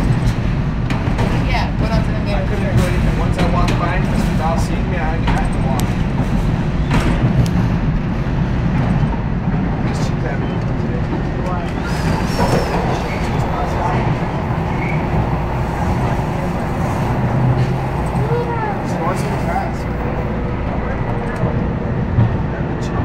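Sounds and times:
subway train rumbling: 0:00.0 - 0:23.0.

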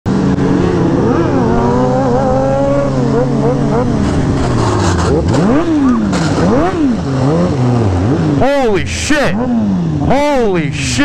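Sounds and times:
motorcycle engines revving: 0:00.1 - 0:11.0.

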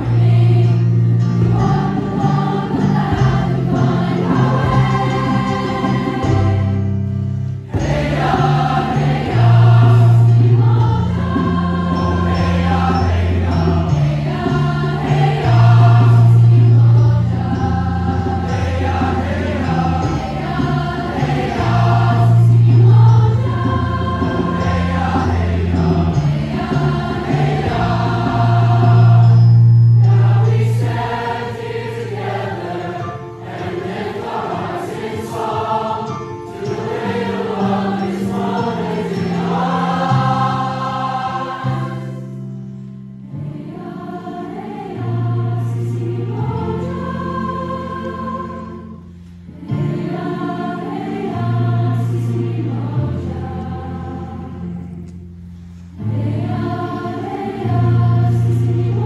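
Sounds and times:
choir singing in harmony: 0:00.0 - 0:59.0.

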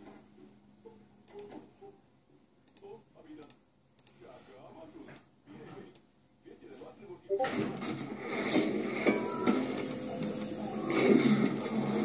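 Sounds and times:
faint clicks and ticks: 0:02.6 - 0:04.2.

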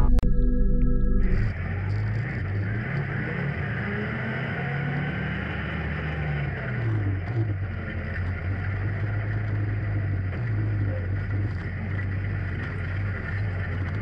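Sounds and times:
atv engine running: 0:07.0 - 0:14.0.

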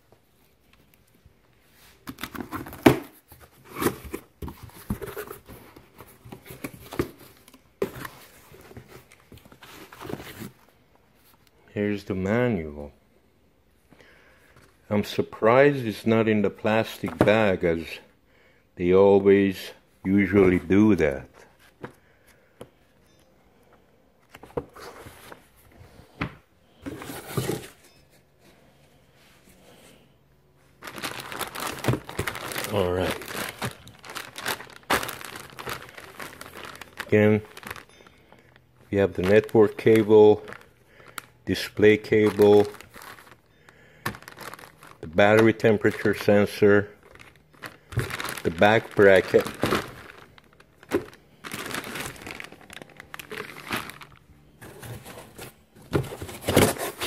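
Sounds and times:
cardboard box being unpacked: 0:02.0 - 0:10.7, 0:26.8 - 0:27.9, 0:30.8 - 0:37.9, 0:42.2 - 0:43.4, 0:44.1 - 0:45.3, 0:47.1 - 0:57.0
plastic bag crinkling: 0:30.8 - 0:55.6.

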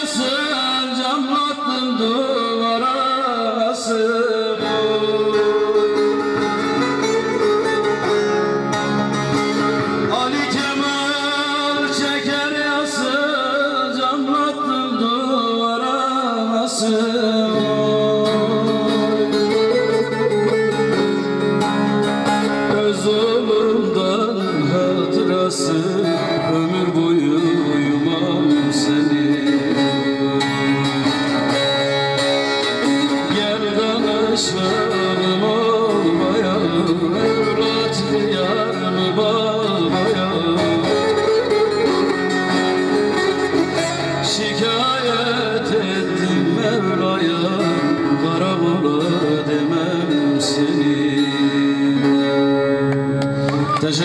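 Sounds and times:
man singing a folk song: 0:00.0 - 0:07.3, 0:09.5 - 0:53.2, 0:53.8 - 0:54.0
plucked long-necked lute: 0:03.6 - 0:15.4, 0:16.7 - 0:54.0.

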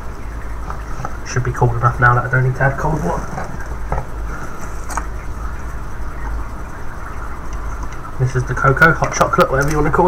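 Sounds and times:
low rumble and hiss: 0:00.0 - 0:10.0.

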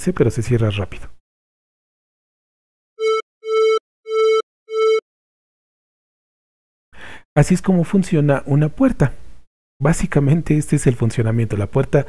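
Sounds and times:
repeating electronic tone: 0:03.0 - 0:05.0.

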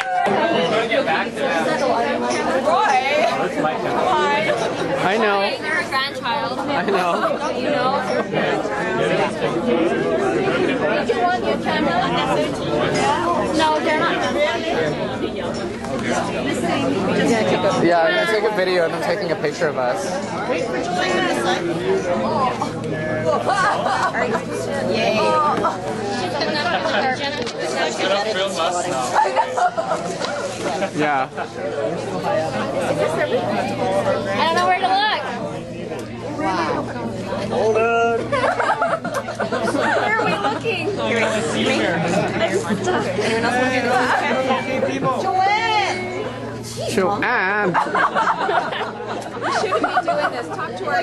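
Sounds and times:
group of people chattering: 0:00.0 - 0:51.0
people talking over one another: 0:00.0 - 0:51.0.

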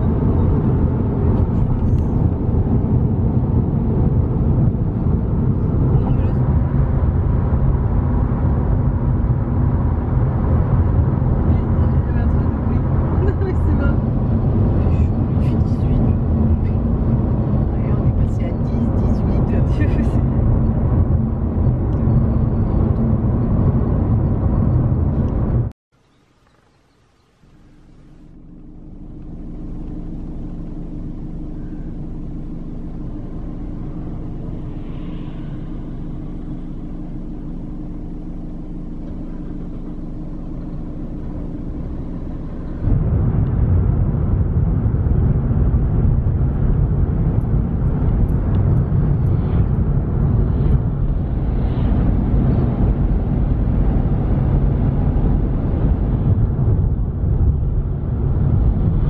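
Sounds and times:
car engine hum: 0:00.0 - 0:59.0
engine and tyre road rumble: 0:00.0 - 0:59.0
held low tones: 0:00.0 - 0:59.0.

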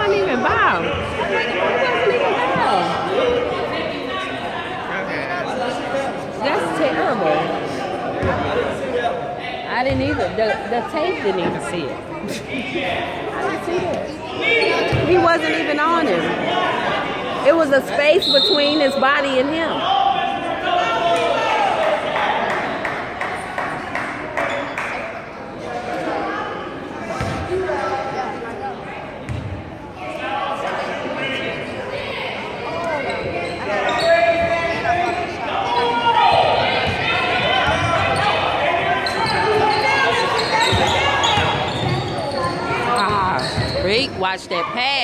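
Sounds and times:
spectator chatter: 0:00.0 - 0:45.0.

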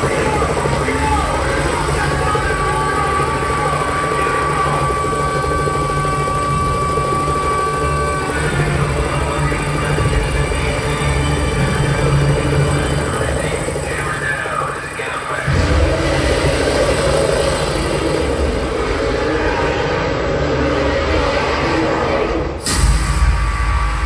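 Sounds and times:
helicopter rotor beat: 0:00.0 - 0:22.6
steady high tone: 0:00.0 - 0:22.9.

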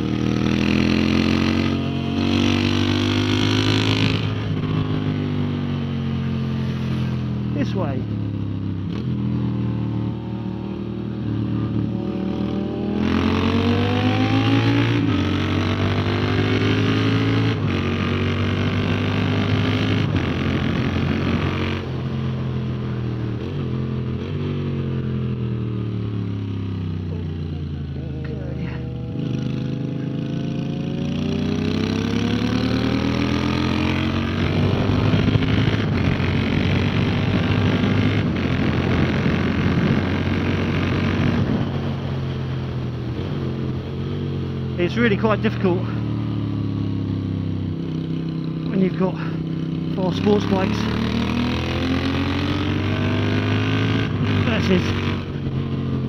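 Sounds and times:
motorcycle engine revving: 0:00.0 - 0:56.0
wind rush: 0:34.1 - 0:43.7.

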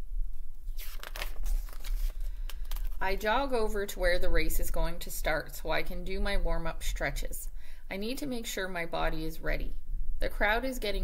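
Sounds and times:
book pages rustling and crinkling: 0:00.6 - 0:03.0.

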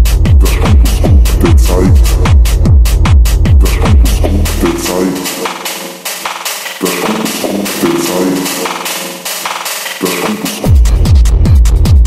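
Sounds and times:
techno percussion hits: 0:00.0 - 0:12.0
pulsing chord stabs: 0:00.5 - 0:11.0.

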